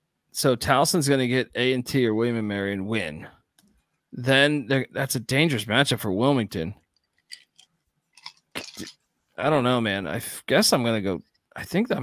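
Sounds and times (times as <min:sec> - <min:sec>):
man swallowing drink: 0:08.2 - 0:08.9.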